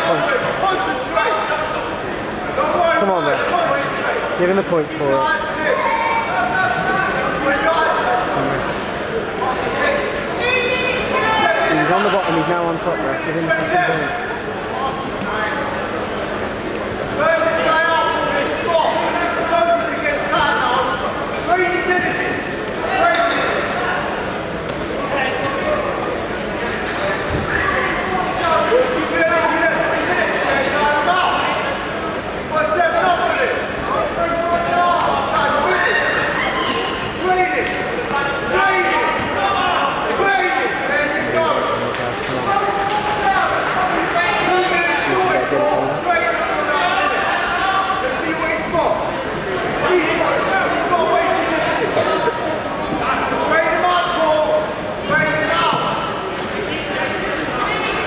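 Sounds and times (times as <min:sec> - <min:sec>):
people talking and calling out: 0:00.0 - 0:58.0.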